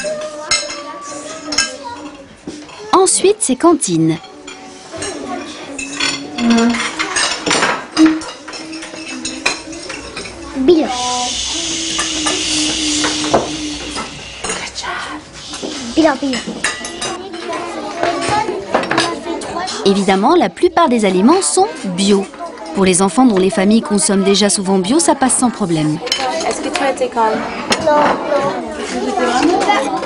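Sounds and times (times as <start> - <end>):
dishes and cutlery clinking: 0.0 - 30.0
short voice: 6.4 - 6.8.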